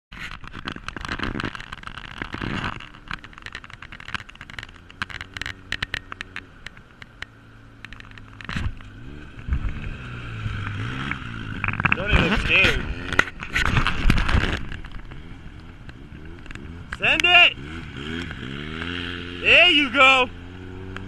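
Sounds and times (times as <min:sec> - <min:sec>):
engine ticks and crackles: 0:00.1 - 0:21.0
off-road engines idling: 0:00.6 - 0:21.0
engine revving: 0:08.1 - 0:21.0.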